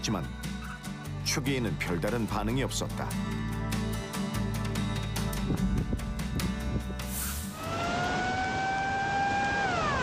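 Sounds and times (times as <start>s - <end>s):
background music: 0.0s - 8.7s
steady roar of noise: 7.6s - 10.0s
warning siren wailing: 7.6s - 10.0s.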